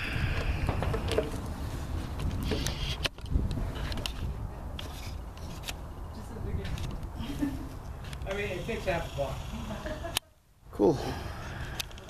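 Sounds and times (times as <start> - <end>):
wind rumble on microphone: 0.0 - 5.2.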